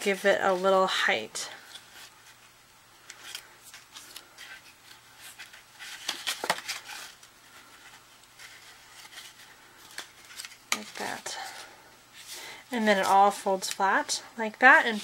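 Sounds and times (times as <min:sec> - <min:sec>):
cardstock rustling and crackling: 0:01.6 - 0:15.0.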